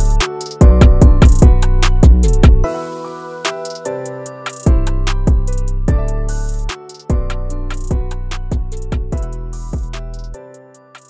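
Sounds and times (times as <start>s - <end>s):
hi-hat ticks: 0.0s - 2.5s, 3.6s - 4.9s, 5.5s - 8.0s, 8.7s - 11.0s
piano notes: 0.0s - 11.0s.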